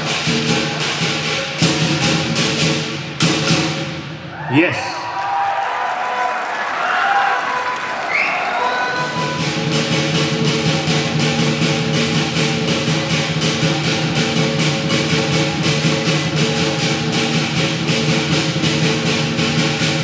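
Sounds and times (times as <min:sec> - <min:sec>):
cymbals crashing: 0:00.0 - 0:04.1, 0:08.6 - 0:20.0
drum beating: 0:00.0 - 0:04.1, 0:08.7 - 0:20.0.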